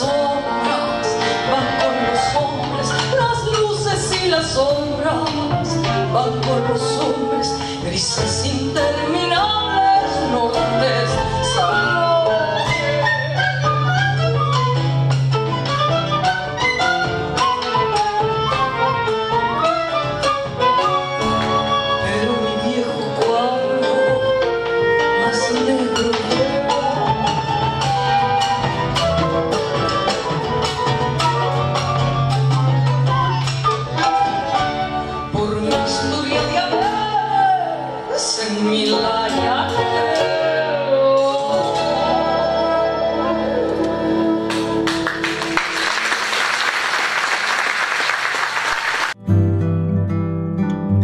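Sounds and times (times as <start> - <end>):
woman singing: 0.0 - 13.7, 21.7 - 28.6, 32.5 - 45.2
acoustic guitar: 0.0 - 45.8, 49.1 - 51.0
bandoneon: 0.0 - 45.8
double bass: 0.0 - 46.0, 49.1 - 51.0
percussion: 0.0 - 49.4
piano: 0.0 - 51.0.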